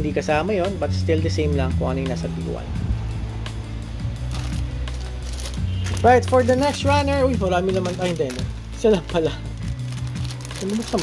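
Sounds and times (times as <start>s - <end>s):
background music with bass line: 0.0s - 11.0s
plastic bags crinkling: 4.3s - 7.2s, 7.8s - 8.5s, 9.2s - 11.0s.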